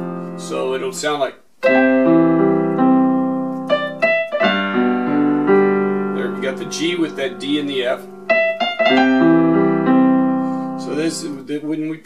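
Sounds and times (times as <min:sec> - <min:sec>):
electronic keyboard piano notes: 0:00.0 - 0:01.0, 0:01.6 - 0:11.4.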